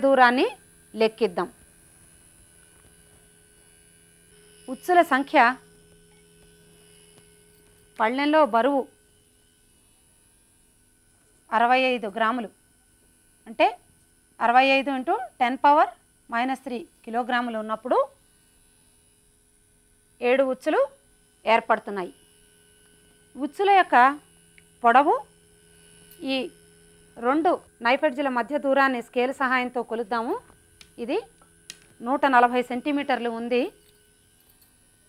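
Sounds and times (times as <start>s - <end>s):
woman speaking: 0.0s - 1.6s, 4.7s - 5.6s, 8.0s - 8.9s, 11.5s - 12.6s, 13.5s - 13.8s, 14.4s - 18.2s, 20.2s - 22.2s, 23.4s - 24.2s, 24.8s - 25.3s, 26.2s - 26.5s, 27.2s - 30.4s, 31.0s - 31.3s, 32.0s - 33.8s
faint electrical hum: 0.0s - 35.0s.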